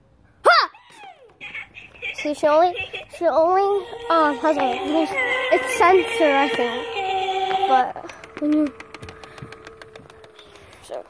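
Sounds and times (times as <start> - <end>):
rapid clicking: 6.9 - 11.0.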